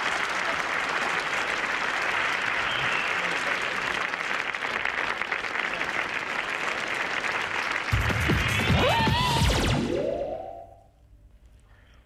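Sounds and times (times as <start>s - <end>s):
rising electronic sweep: 9.0s - 10.9s
faint background noise: 10.7s - 12.0s.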